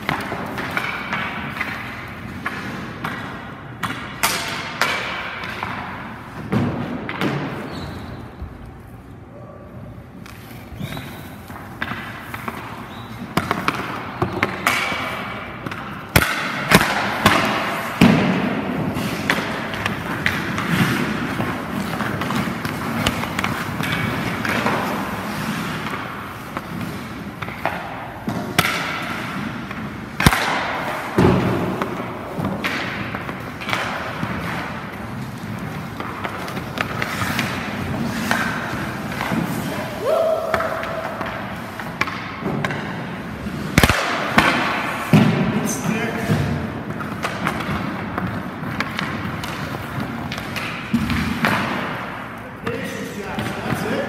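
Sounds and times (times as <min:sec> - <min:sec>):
pucks and sticks knocking: 0:00.0 - 0:08.6, 0:10.1 - 0:54.0
skate blades scraping on ice: 0:10.0 - 0:52.1.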